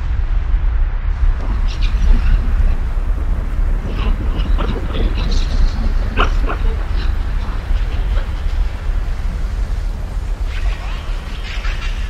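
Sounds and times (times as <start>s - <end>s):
deep rumble: 0.0s - 12.0s.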